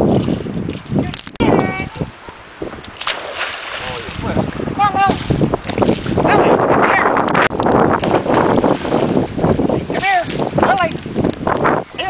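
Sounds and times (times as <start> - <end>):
water splashing and sloshing: 0.0 - 11.9.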